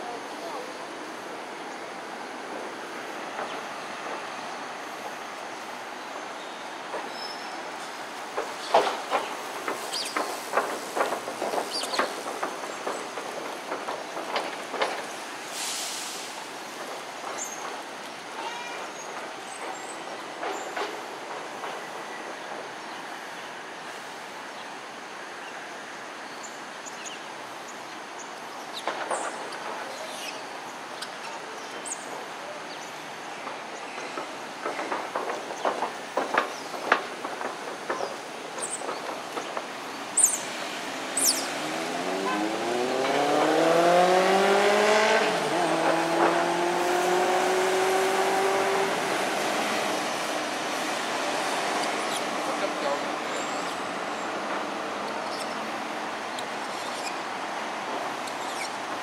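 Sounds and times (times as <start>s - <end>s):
vehicle engine speeding up: 41.5s - 50.0s.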